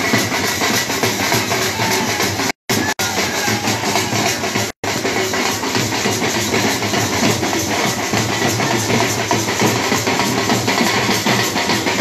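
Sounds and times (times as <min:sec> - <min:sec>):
procession drums playing: 0:00.0 - 0:12.0.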